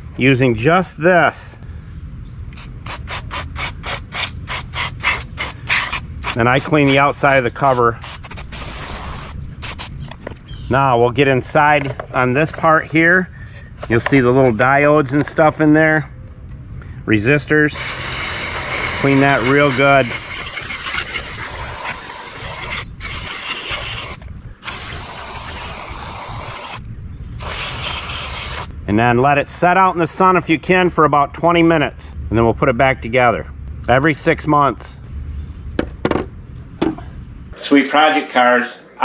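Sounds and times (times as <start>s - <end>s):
aerosol can spraying: 2.9s - 9.9s, 17.8s - 26.8s, 27.4s - 28.7s.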